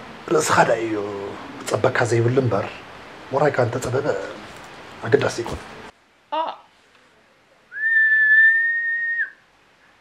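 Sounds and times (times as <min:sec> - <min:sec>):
person whistling high note: 0:07.8 - 0:09.4.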